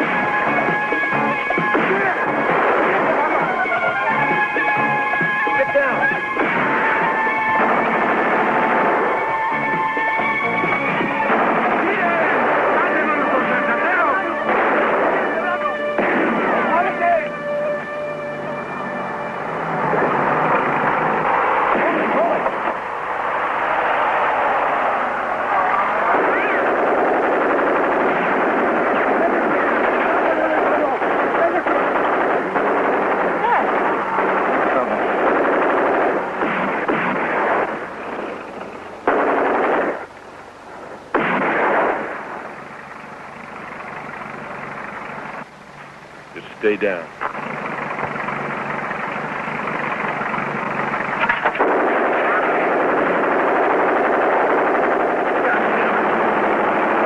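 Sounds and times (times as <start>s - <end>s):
rapid gunfire: 0.0s - 17.2s, 19.9s - 22.9s, 25.9s - 40.1s, 41.1s - 42.7s, 47.3s - 57.0s
film music: 0.0s - 45.5s.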